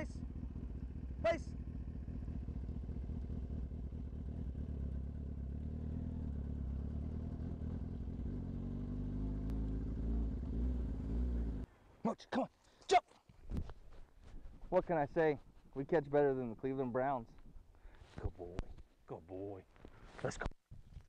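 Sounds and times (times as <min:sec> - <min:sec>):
motorcycle engine revving: 0:00.0 - 0:11.7.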